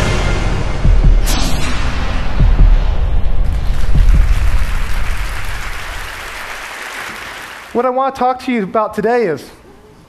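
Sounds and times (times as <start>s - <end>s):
low booms: 0.1s - 6.4s
audience applause: 3.5s - 7.8s.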